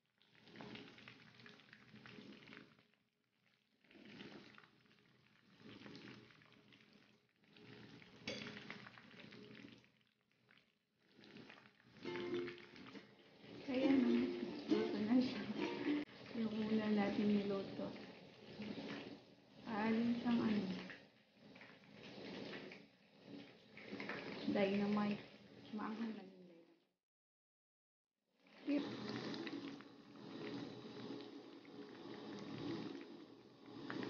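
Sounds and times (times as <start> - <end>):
battered leaves frying in oil: 8.0 - 10.8, 19.6 - 21.0.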